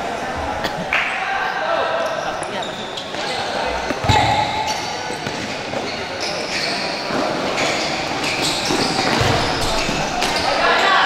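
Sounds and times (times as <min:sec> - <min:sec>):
shoes squeaking on court: 0:02.0 - 0:10.8.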